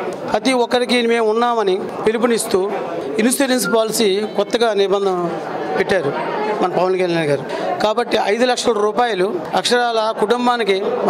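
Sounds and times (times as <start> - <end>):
man talking into microphone: 0.4 - 6.1.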